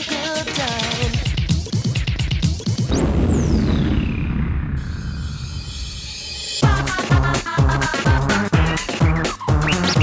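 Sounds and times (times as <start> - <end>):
dance music beat: 0.0 - 2.8, 6.6 - 10.0
sudden hit: 2.9 - 6.4.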